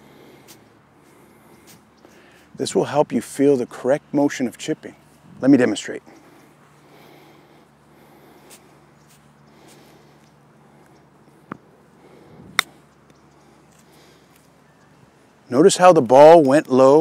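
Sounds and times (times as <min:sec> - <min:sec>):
golf club striking ball: 0:12.5 - 0:12.8.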